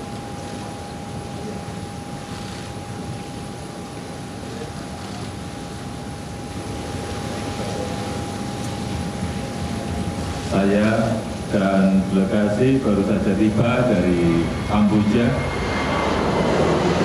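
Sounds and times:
jet engines running: 0:00.0 - 0:17.0.

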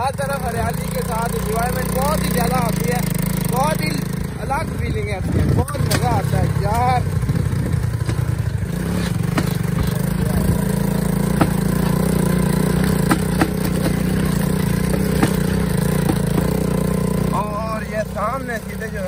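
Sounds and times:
knocks and rattles over bumps: 0:00.0 - 0:19.0
rickshaw engine running: 0:00.0 - 0:19.0.

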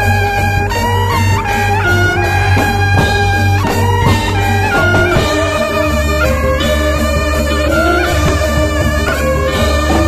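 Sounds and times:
shawms playing nasal melody: 0:00.0 - 0:10.0
low steady drone: 0:00.1 - 0:10.0
drum strokes: 0:00.8 - 0:10.0.

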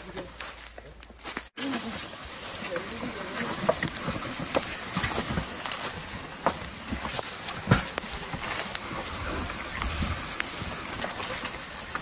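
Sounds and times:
footsteps: 0:00.0 - 0:12.0
sled scraping through dry grass: 0:00.0 - 0:12.0
twigs snapping: 0:03.4 - 0:12.0.

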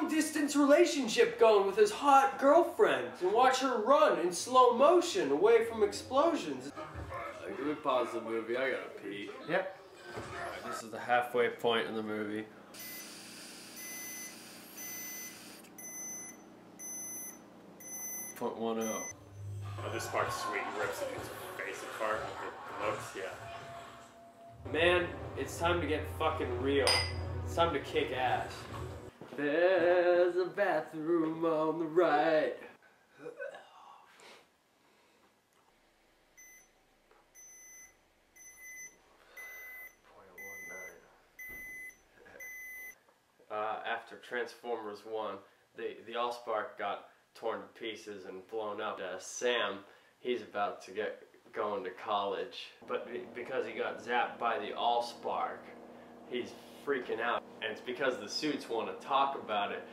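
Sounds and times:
breathalyzer beeping: 0:12.8 - 0:19.2, 0:37.4 - 0:43.0.

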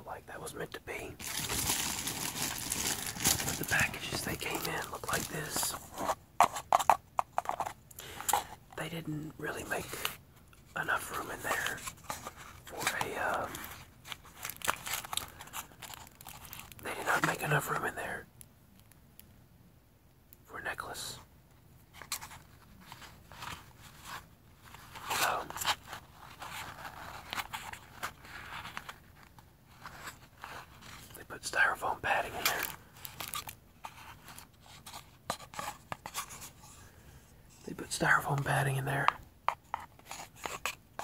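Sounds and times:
cardboard box crackling: 0:01.2 - 0:07.7.

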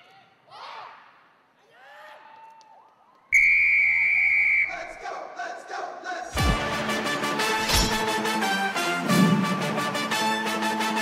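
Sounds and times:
loud whistle blast: 0:03.3 - 0:04.9.

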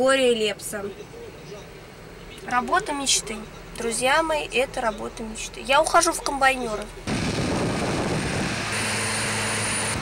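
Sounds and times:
combine harvester droning: 0:06.7 - 0:10.0
thin high whine: 0:07.2 - 0:10.0.

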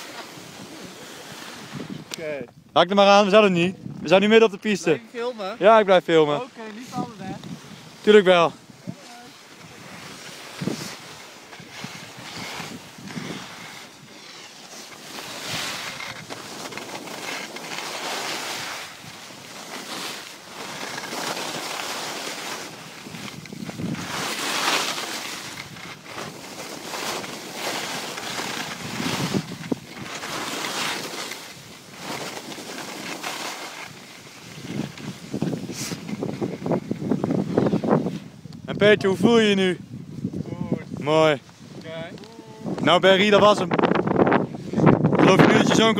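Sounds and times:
skis scraping on snow: 0:00.0 - 0:02.4, 0:03.0 - 0:45.9
wind on microphone: 0:00.0 - 0:02.8, 0:03.7 - 0:04.1, 0:06.8 - 0:17.3, 0:22.6 - 0:24.6, 0:28.3 - 0:30.4, 0:34.4 - 0:45.9.

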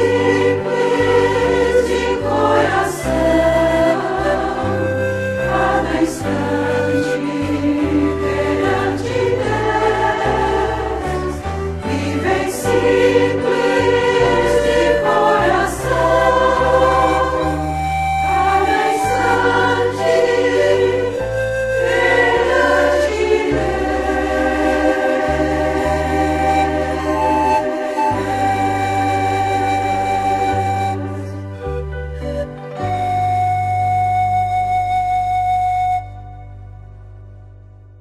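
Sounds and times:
choir singing a hymn: 0:00.0 - 0:33.3
instrumental accompaniment: 0:00.0 - 0:38.0.

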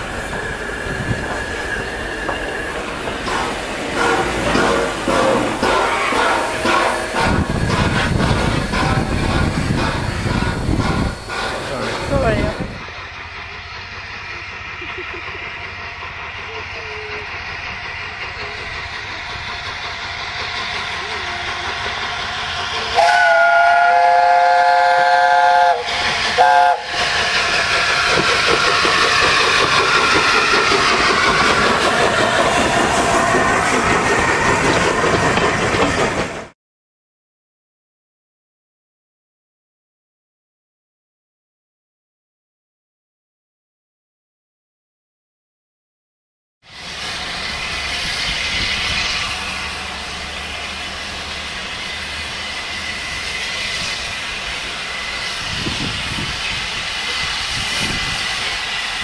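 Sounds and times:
locomotive exhaust rush: 0:00.0 - 0:36.2, 0:46.7 - 0:59.0
train wheels on rails: 0:00.0 - 0:36.6, 0:46.6 - 0:59.0
steam locomotive chime whistle: 0:04.0 - 0:07.6, 0:16.4 - 0:17.4, 0:22.6 - 0:27.0.

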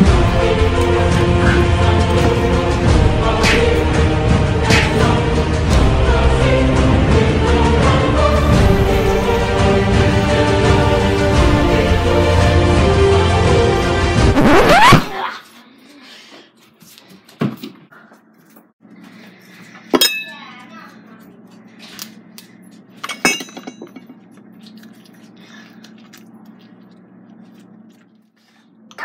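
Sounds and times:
steady low hum: 0:00.0 - 0:14.3
kitchenware clinking: 0:19.9 - 0:20.6, 0:23.0 - 0:24.2.

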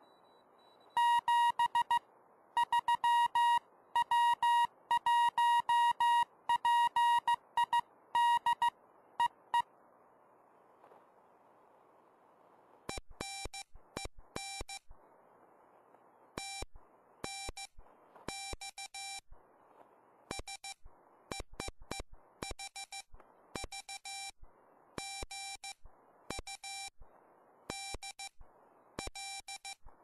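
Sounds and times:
morse code beeps: 0:00.0 - 0:02.0, 0:02.6 - 0:09.7, 0:12.9 - 0:14.8, 0:16.4 - 0:19.2, 0:20.3 - 0:24.4, 0:25.0 - 0:26.9, 0:27.7 - 0:28.4, 0:29.0 - 0:29.9.

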